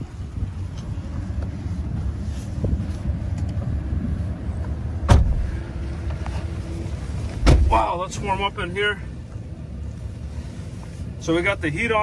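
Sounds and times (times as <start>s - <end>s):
engine idling rumble: 0.0s - 12.0s.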